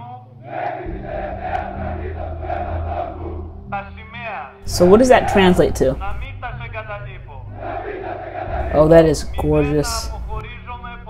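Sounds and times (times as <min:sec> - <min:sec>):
voices chanting in unison: 0:00.0 - 0:10.4
deep sustained music tone: 0:00.9 - 0:05.2.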